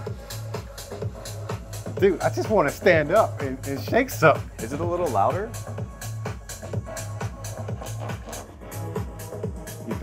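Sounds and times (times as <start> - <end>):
house music through speaker: 0.0 - 10.0.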